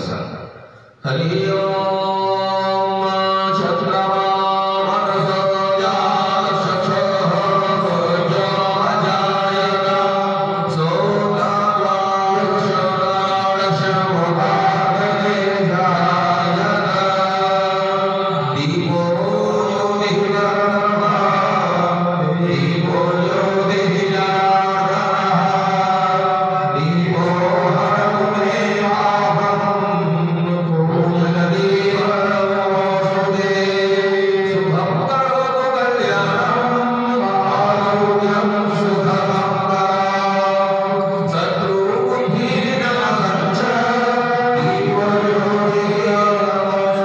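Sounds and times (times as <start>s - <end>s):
man chanting into microphone: 0.0s - 47.0s.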